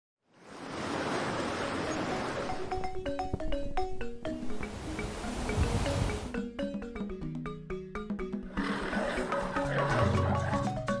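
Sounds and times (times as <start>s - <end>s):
upbeat marimba music: 1.6s - 11.0s
lion roaring: 8.5s - 10.7s.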